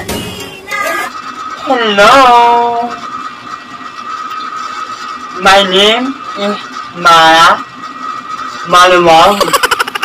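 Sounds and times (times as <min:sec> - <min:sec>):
high-pitched whine: 0:00.0 - 0:03.2.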